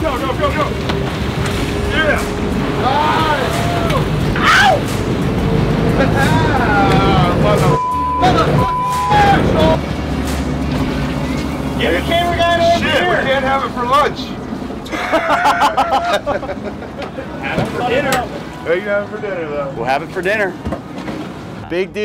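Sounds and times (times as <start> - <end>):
men talking: 0.0 - 10.0, 10.8 - 20.7, 21.5 - 22.0
boat engine rumble: 0.0 - 22.0
censor bleep: 7.8 - 9.3.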